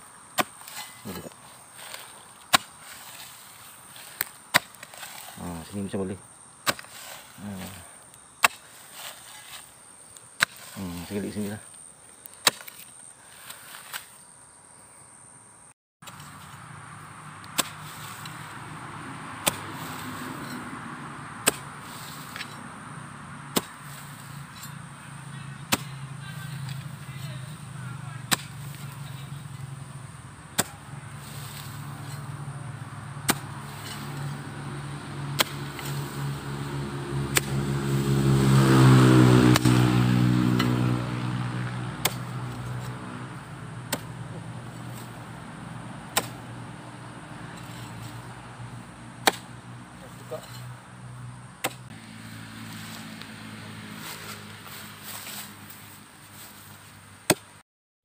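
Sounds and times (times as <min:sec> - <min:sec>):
hoe striking hard soil: 0:00.3 - 0:05.8, 0:06.6 - 0:11.6, 0:12.3 - 0:14.2, 0:16.0 - 0:16.7, 0:17.3 - 0:18.8, 0:19.4 - 0:22.7, 0:23.5 - 0:50.8, 0:51.6 - 0:52.1, 0:56.4 - 0:57.6
vehicle engine passing by: 0:00.6 - 0:04.3, 0:04.9 - 0:06.2, 0:06.8 - 0:08.1, 0:10.4 - 0:11.6, 0:16.1 - 0:57.1.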